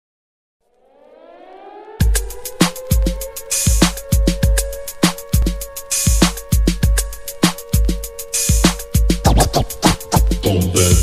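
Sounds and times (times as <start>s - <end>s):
rising siren wail: 0.6s - 11.0s.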